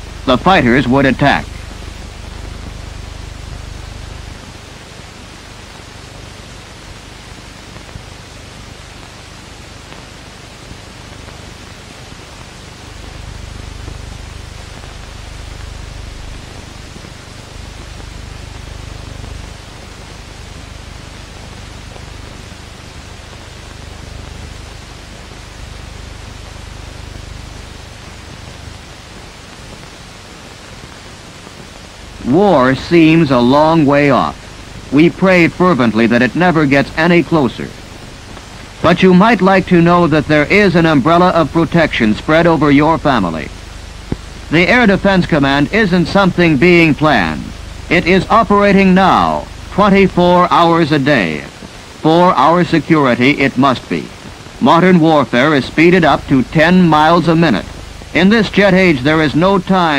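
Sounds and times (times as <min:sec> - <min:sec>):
film soundtrack hiss: 0:00.0 - 0:59.9.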